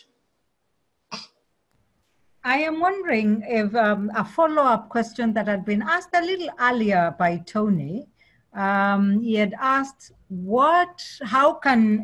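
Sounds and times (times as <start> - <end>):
person coughing: 1.1 - 1.4.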